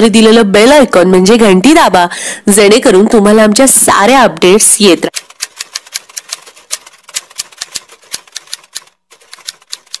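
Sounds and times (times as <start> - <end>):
typewriter key clicks: 5.2 - 10.0.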